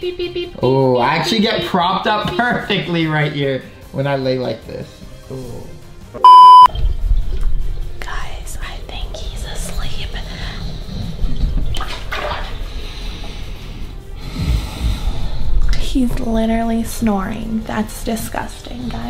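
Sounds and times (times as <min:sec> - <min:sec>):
censor beep: 0:06.2 - 0:06.7
man snoring: 0:14.1 - 0:15.6.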